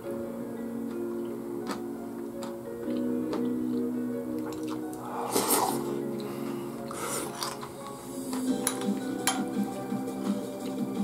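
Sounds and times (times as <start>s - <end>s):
background music with held notes: 0.0s - 11.0s
loud slurp of porridge: 5.0s - 5.9s.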